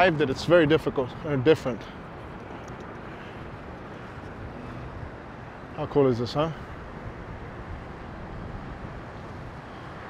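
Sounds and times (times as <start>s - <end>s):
distant engines droning: 0.0s - 10.0s
wind on microphone: 6.6s - 10.0s.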